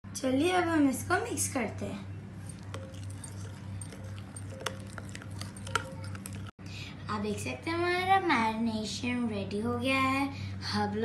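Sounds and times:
low steady hum: 0.1s - 9.7s
spoon stirring thick mixture: 2.4s - 6.5s
spoon clinking against glass: 2.5s - 6.5s.

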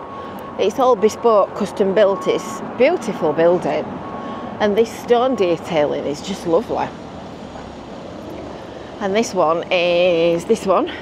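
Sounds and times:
town traffic hum: 0.0s - 11.0s.

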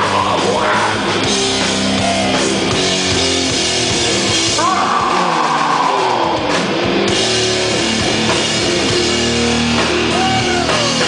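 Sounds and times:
punk band playing: 0.0s - 11.0s.

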